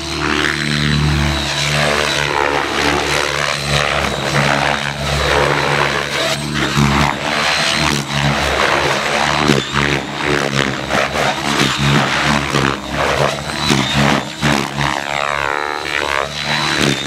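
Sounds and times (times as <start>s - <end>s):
helicopter whoosh passing close: 0.0s - 17.0s
rc helicopter rotors and motor: 0.0s - 17.0s.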